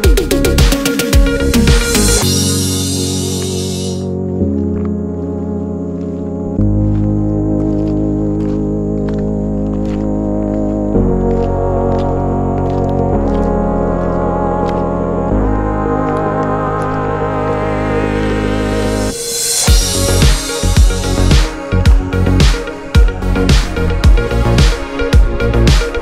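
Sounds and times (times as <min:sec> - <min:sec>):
organ-like chords: 0:00.0 - 0:26.0.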